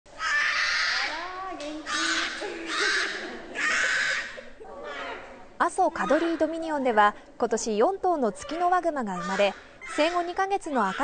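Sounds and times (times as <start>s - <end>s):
bear cubs crying: 0.1s - 7.2s, 8.0s - 11.0s.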